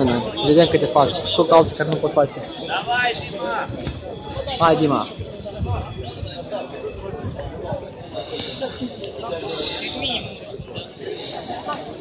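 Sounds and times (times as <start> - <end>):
crowd talking: 0.0 - 12.0
hissing noise: 8.0 - 12.0.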